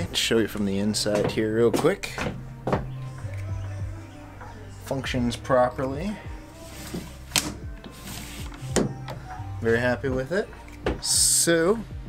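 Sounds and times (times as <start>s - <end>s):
sliding glass window: 6.6s - 8.9s.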